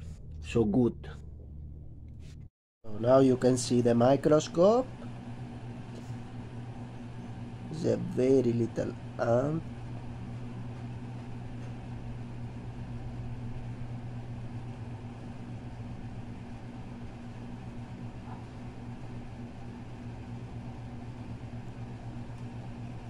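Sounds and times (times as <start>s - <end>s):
low machine hum: 0.0s - 23.0s.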